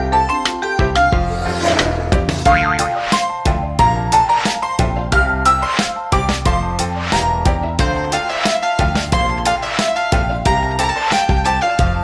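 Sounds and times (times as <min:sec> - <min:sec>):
playful background music: 0:00.0 - 0:12.0
warbling pitch effect: 0:02.5 - 0:03.0.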